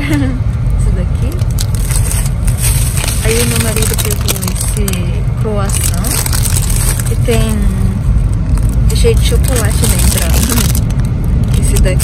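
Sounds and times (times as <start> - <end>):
car engine rumble from inside: 0.0 - 12.0.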